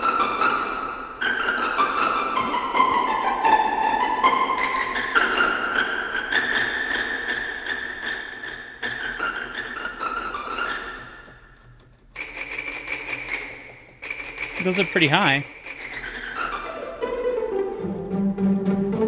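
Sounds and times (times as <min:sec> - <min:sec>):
high string notes: 0:16.7 - 0:19.0.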